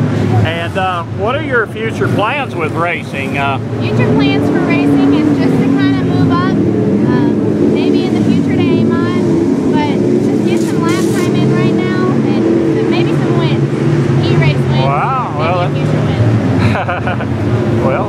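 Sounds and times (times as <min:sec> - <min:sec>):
race car engines running: 0:00.0 - 0:18.0
young woman talking: 0:03.8 - 0:16.3.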